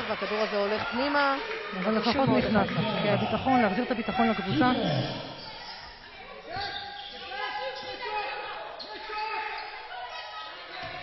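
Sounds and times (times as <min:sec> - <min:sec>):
players' voices: 0:00.0 - 0:11.0.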